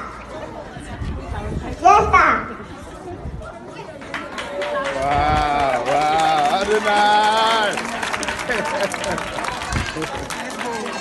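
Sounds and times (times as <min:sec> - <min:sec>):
onlookers chattering: 0:00.0 - 0:11.0.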